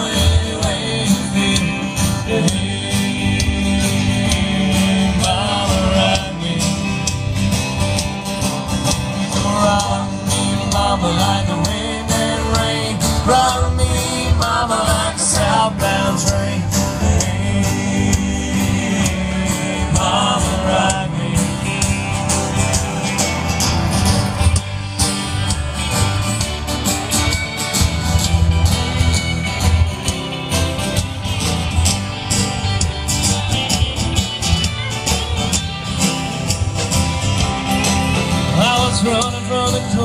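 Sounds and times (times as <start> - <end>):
live country band playing: 0.0 - 40.0.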